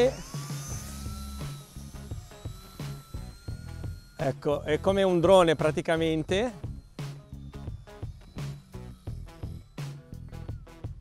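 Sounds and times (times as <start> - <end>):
background music: 0.0 - 11.0
electric motor propeller whine: 0.0 - 11.0.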